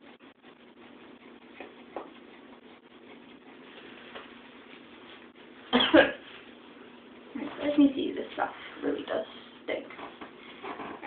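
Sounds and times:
person coughing: 0:05.7 - 0:06.2.

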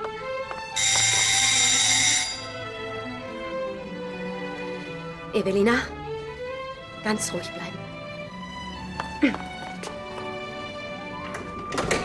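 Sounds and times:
soft background music: 0:00.0 - 0:12.0
electric doorbell buzzing: 0:00.7 - 0:02.7.

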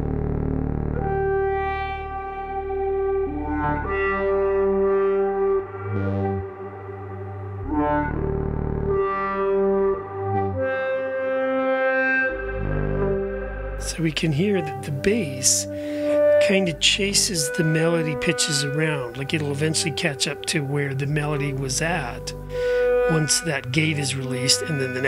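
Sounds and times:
synthesizer bass drone: 0:00.0 - 0:19.8, 0:20.7 - 0:25.0
synthesizer melody notes: 0:00.0 - 0:25.0.

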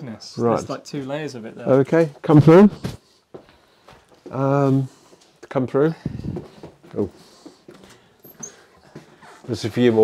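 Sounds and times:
faint footsteps: 0:02.1 - 0:10.0.

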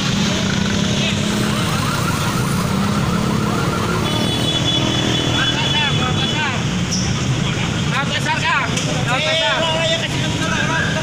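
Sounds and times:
motorcycle engines running: 0:00.0 - 0:11.0.

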